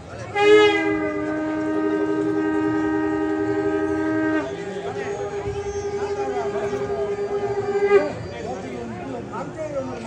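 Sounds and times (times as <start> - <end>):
conch shell blast: 0.3 - 4.6.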